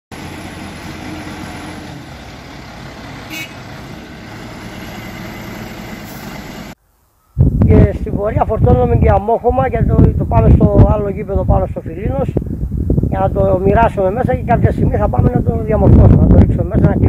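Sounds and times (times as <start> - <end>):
backhoe diesel engine running: 0.1 - 6.8
man speaking: 7.6 - 12.4, 13.1 - 17.0.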